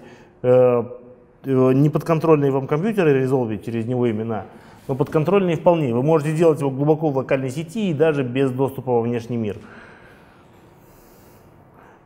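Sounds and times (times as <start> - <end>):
man breathing: 0.0 - 0.4, 4.5 - 4.9, 9.6 - 12.0.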